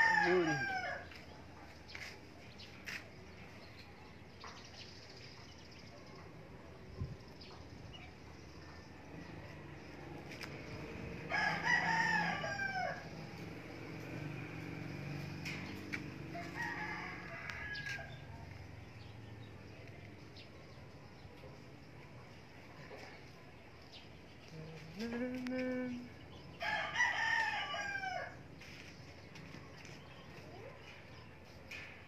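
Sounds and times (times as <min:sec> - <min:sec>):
rooster crowing: 0:00.0 - 0:01.2, 0:11.2 - 0:13.3, 0:16.2 - 0:18.4, 0:26.6 - 0:28.4
low steady hum: 0:24.2 - 0:26.6.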